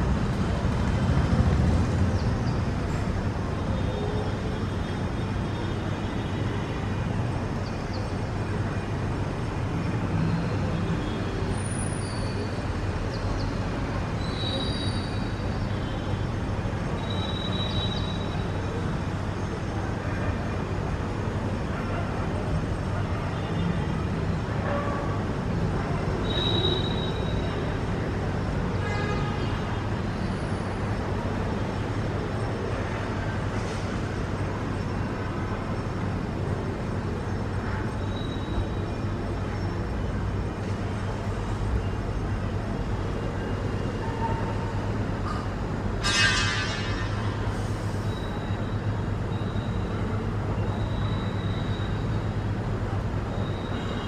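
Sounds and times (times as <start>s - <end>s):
distant traffic: 0.0s - 54.0s.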